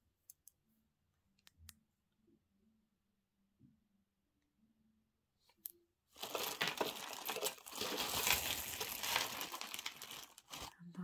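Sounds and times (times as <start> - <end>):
packaging crinkling: 6.2 - 10.8.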